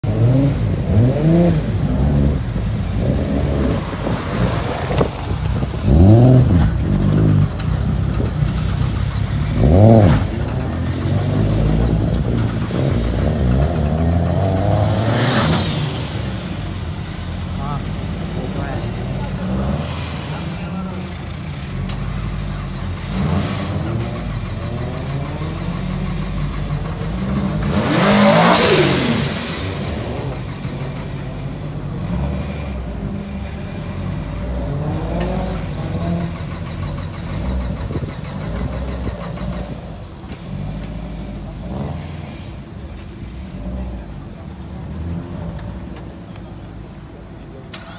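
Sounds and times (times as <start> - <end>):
car engines revving: 0.0 - 47.9.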